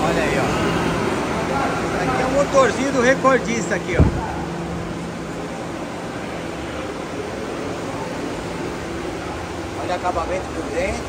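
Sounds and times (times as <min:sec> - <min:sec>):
distant indistinct voices: 0:00.0 - 0:11.0.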